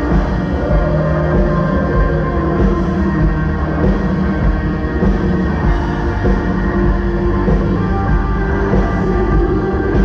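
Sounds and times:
electric and acoustic guitars: 0.0s - 10.0s
steady bass: 0.0s - 10.0s
worship band playing live: 0.0s - 10.0s.

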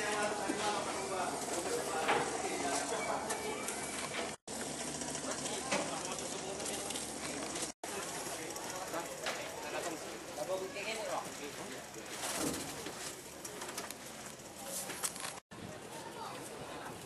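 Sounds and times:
men chattering and calling: 0.0s - 4.4s
busy outdoor noise: 0.0s - 17.0s.

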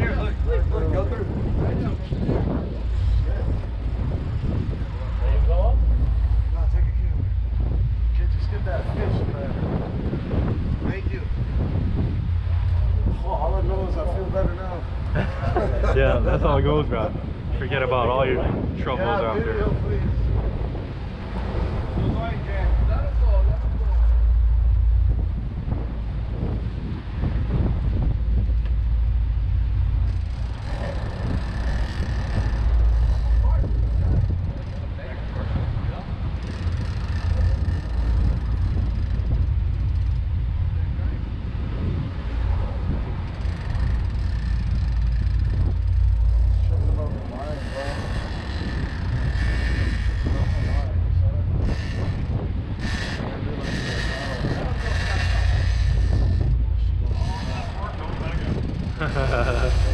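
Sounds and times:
boat engines rumbling: 0.0s - 59.9s
wind on microphone: 0.0s - 59.9s.

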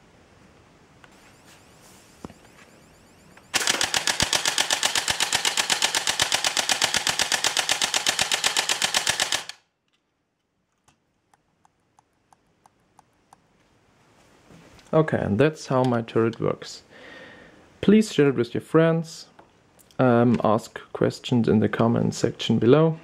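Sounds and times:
airsoft gun firing full auto: 3.5s - 9.7s.

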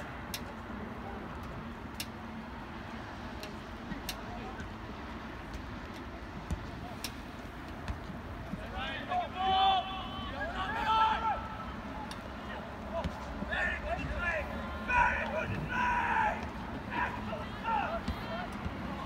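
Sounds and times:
people shouting: 8.8s - 19.0s.

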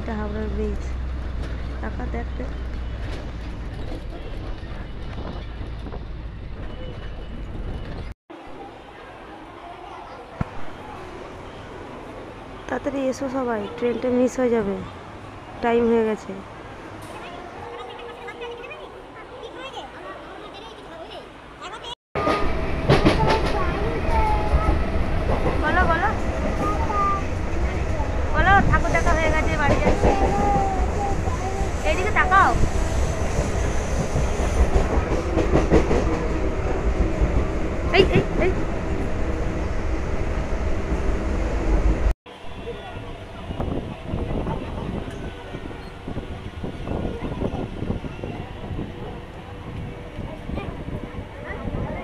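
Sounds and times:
train rumble inside carriage: 0.0s - 8.1s, 22.2s - 52.0s
bus engine and road rumble: 0.0s - 8.2s
child's voice: 17.0s - 22.0s, 23.1s - 24.8s, 26.5s - 32.6s, 50.2s - 52.0s.

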